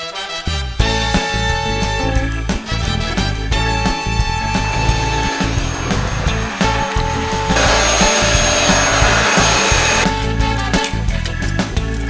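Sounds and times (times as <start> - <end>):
background music with beat: 0.0 - 12.0
vacuum cleaner running: 4.0 - 10.1.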